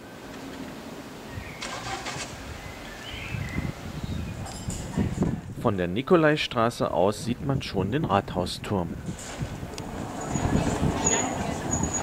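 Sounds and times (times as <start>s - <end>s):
road traffic rumble: 7.4s - 12.0s.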